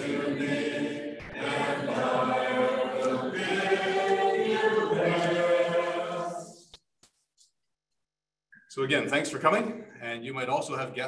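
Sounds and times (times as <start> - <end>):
congregation singing a hymn: 0.0 - 6.7.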